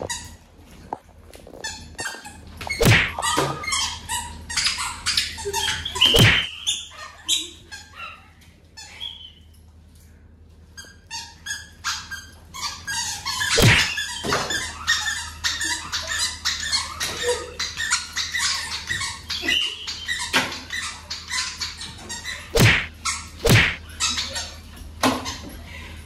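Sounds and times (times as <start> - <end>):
leather belt slaps: 2.8 - 3.2, 13.6 - 13.9, 22.6 - 23.8.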